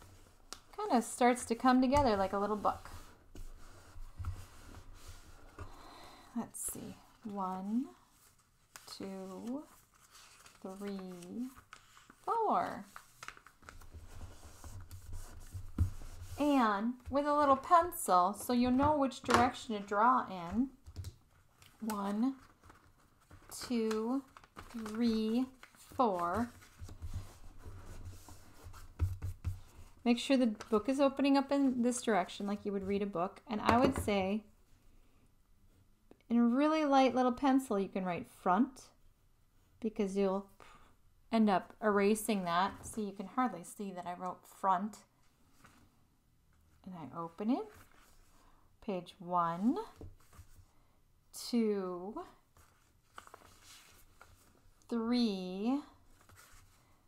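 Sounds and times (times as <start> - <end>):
paper rustling: 7.8 - 16.4, 20.5 - 29.9, 52.5 - 54.8, 56.0 - 57.0.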